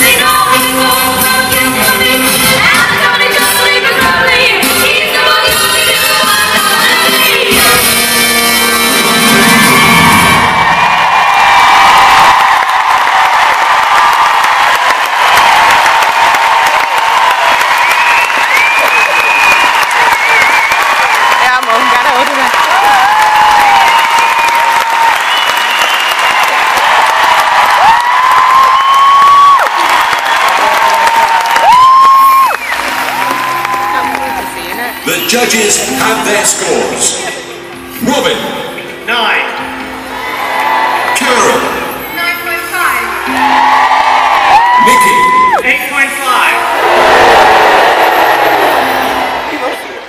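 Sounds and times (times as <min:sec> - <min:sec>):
crowd cheering and whooping: 0:09.0 - 0:35.1, 0:39.8 - 0:42.1, 0:43.0 - 0:50.0
crowd clapping: 0:10.2 - 0:35.6, 0:40.1 - 0:42.0, 0:42.9 - 0:50.0.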